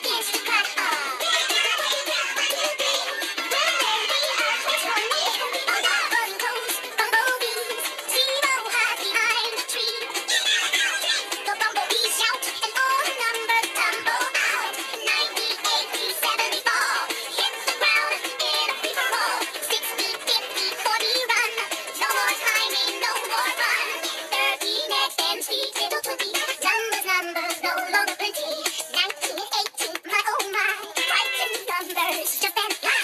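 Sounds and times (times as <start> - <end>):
children's song with processed vocals: 0.0 - 33.0
high synthetic singing voice: 0.0 - 33.0
upbeat backing track: 0.0 - 33.0.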